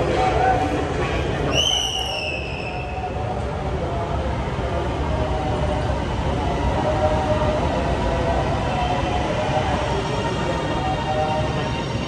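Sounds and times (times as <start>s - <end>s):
train wheels rumbling: 0.0s - 4.1s.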